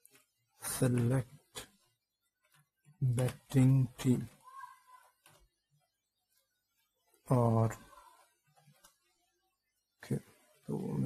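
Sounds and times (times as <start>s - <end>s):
man speaking: 0.6s - 1.8s, 3.0s - 4.4s, 7.3s - 8.0s, 10.0s - 11.0s.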